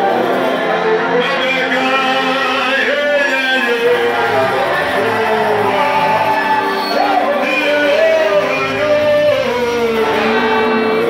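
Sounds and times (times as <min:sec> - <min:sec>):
worship band playing: 0:00.0 - 0:11.0.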